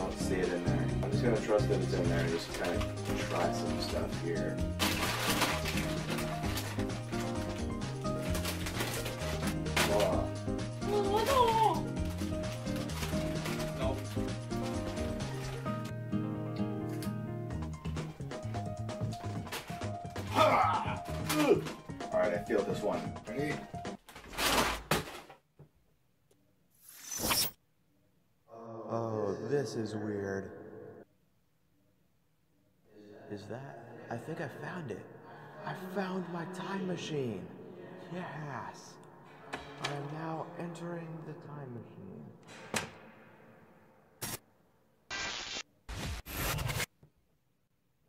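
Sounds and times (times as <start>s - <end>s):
plastic chip bag crinkling: 2.1s - 10.4s, 11.2s - 15.7s
bursts of harsh static noise: 45.1s - 46.9s.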